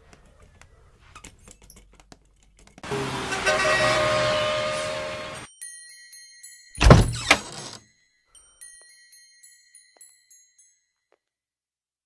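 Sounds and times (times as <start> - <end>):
car horns honking: 2.9 - 5.5.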